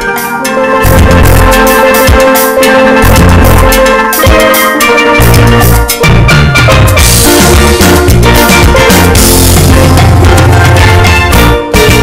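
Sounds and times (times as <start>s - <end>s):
background music with drums: 0.0s - 12.0s.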